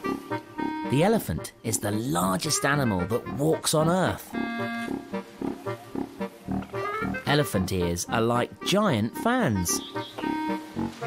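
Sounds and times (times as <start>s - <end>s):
background music: 0.0s - 11.0s
elephants calling: 2.4s - 8.7s, 9.6s - 11.0s.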